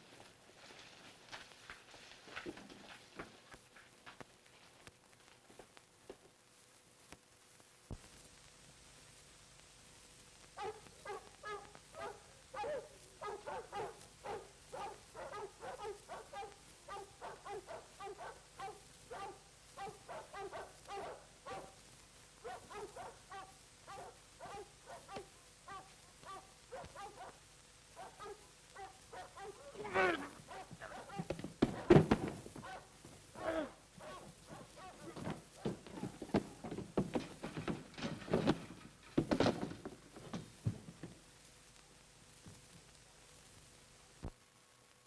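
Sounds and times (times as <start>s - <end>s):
animal whimpering cries: 29.4s - 31.2s, 33.4s - 35.2s
animal sliding cry: 29.7s - 32.0s.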